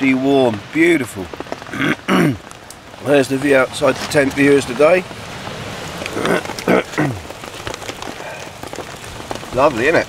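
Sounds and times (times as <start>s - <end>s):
rain pattering: 0.0s - 10.0s.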